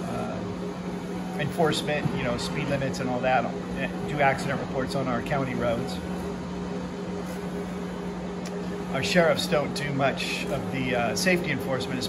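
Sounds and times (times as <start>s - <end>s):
printer machine hum: 0.0s - 12.0s.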